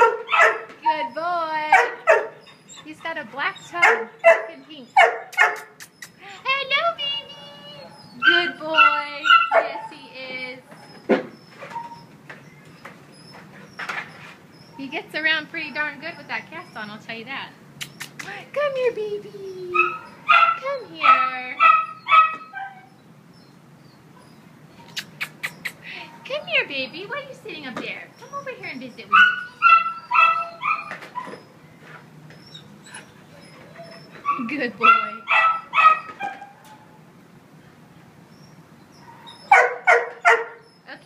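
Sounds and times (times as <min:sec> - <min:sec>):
dog barking: 0:00.0 - 0:00.7, 0:01.7 - 0:02.4, 0:03.8 - 0:05.7, 0:08.8 - 0:09.9, 0:19.8 - 0:22.9, 0:29.1 - 0:31.0, 0:34.3 - 0:36.6, 0:39.1 - 0:40.6.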